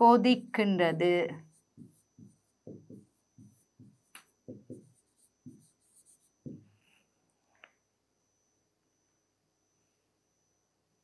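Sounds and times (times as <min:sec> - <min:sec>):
pen strokes on board: 0:01.4 - 0:07.0.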